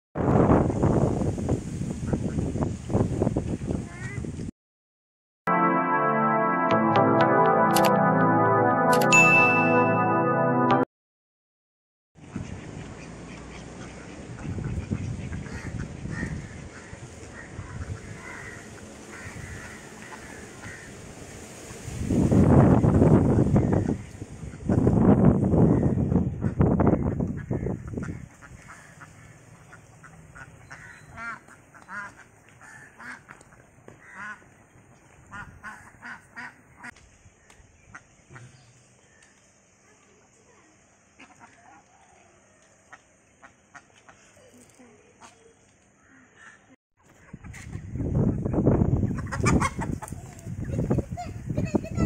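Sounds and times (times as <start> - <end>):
ducks quacking: 12.2 - 21.0, 25.6 - 34.6, 35.3 - 37.0, 41.1 - 41.8, 46.0 - 52.0
chickens clucking and squawking: 47.0 - 52.0.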